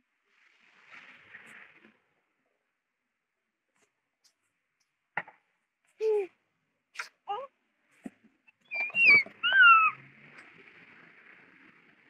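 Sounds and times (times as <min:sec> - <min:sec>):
child squealing: 0:08.7 - 0:10.0.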